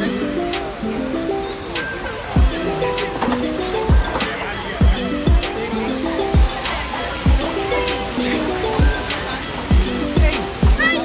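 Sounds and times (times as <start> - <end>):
music with held melodic notes: 0.0 - 11.0.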